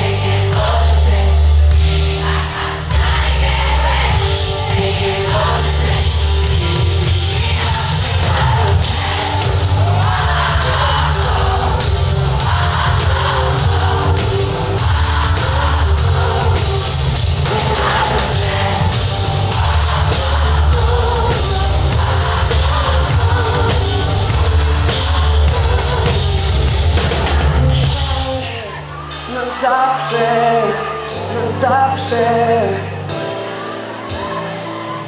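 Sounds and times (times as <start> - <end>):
person singing: 0.0 - 35.0
rock band music: 0.0 - 35.0.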